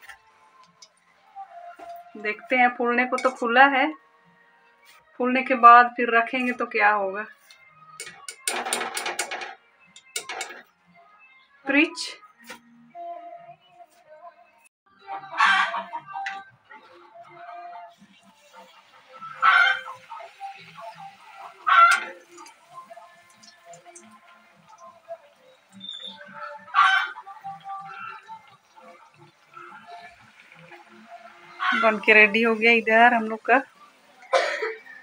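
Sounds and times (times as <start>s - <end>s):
food sizzling in hot oil: 17.9s - 35.0s.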